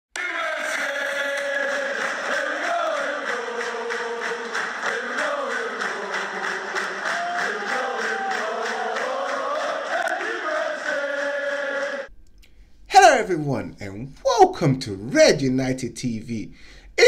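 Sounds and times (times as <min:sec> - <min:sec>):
crowd chanting in unison: 0:00.2 - 0:12.1.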